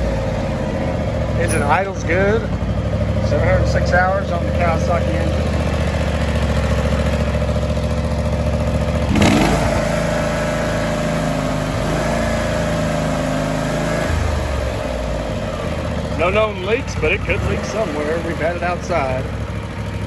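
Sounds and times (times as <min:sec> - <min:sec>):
lawn tractor engine idling: 0:00.0 - 0:20.0.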